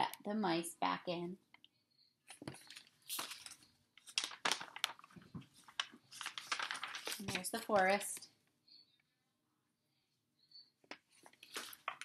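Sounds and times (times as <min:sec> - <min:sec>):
book pages rustling: 0:02.2 - 0:08.2, 0:10.8 - 0:12.0.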